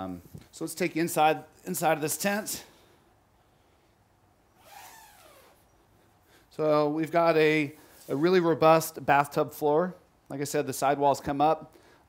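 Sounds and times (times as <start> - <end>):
tent fabric rasping: 4.6 - 5.6.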